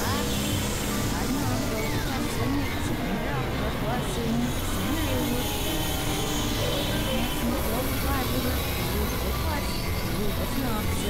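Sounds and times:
dense synthesizer noise wash: 0:00.0 - 0:11.0
low drone: 0:00.0 - 0:11.0
wavering gliding tones: 0:00.0 - 0:11.0.

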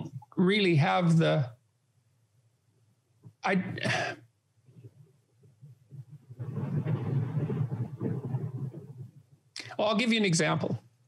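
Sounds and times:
man speaking: 0:00.0 - 0:01.6, 0:03.4 - 0:04.2, 0:09.6 - 0:10.8
man clearing throat: 0:03.6 - 0:04.3.

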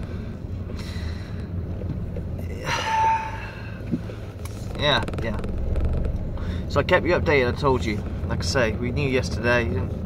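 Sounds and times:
man breathing: 0:00.0 - 0:01.7, 0:06.3 - 0:06.7
car engine hum inside cabin: 0:00.0 - 0:10.0.

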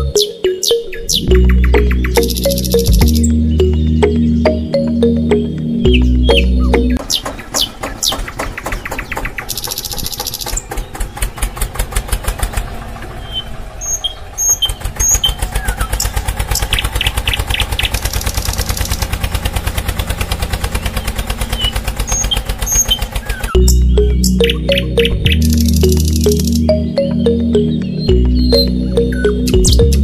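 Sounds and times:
diesel engine chugging: 0:01.3 - 0:30.0.

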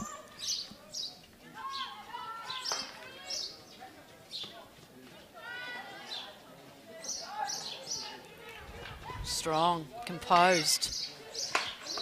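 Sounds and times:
distant players calling out: 0:00.0 - 0:03.7.

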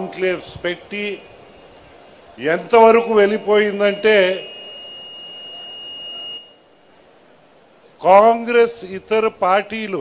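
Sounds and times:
faint hall noise: 0:00.0 - 0:10.0
high-pitched ringing tone: 0:02.9 - 0:06.8.

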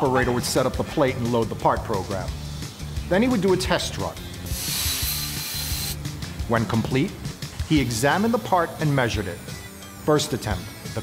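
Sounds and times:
plasma torch hissing: 0:04.5 - 0:06.0.

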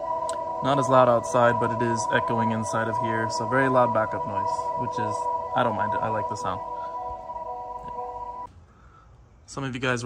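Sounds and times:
car reverse warning tones: 0:00.0 - 0:08.5.

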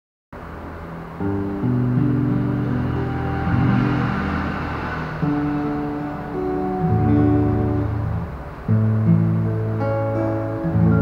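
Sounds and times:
acoustic guitar playing chords: 0:00.4 - 0:11.0.

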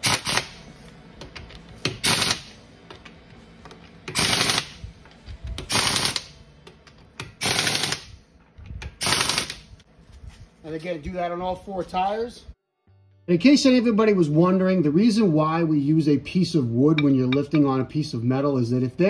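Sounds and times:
impact wrench hammering: 0:01.8 - 0:03.0.

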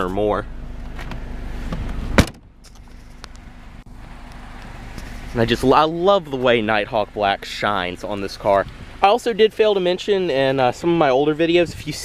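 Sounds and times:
car hatch slamming shut: 0:01.0 - 0:02.5.

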